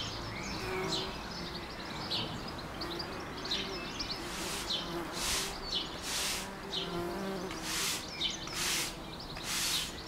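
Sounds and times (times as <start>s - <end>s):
small bird chirps: 0.0s - 10.0s
bumblebees buzzing: 3.6s - 10.0s
short bursts of hiss: 4.3s - 6.5s, 7.6s - 10.0s.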